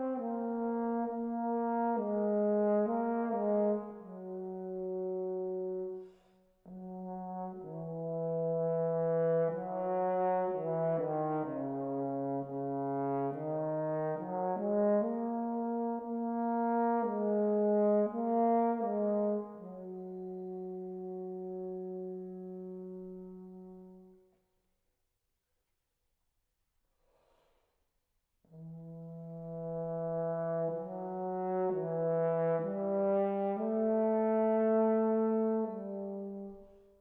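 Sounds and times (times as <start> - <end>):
french horn melody: 0.0 - 24.3, 28.5 - 37.0.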